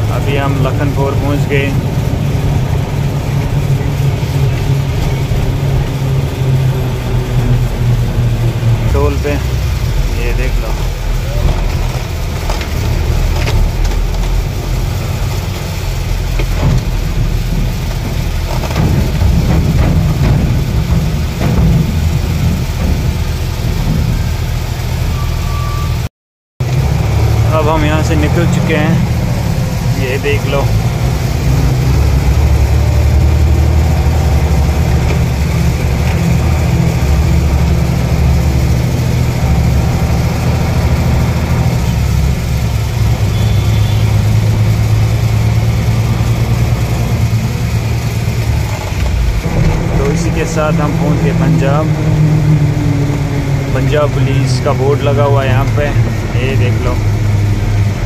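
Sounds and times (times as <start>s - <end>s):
truck diesel engine droning: 0.0s - 58.0s.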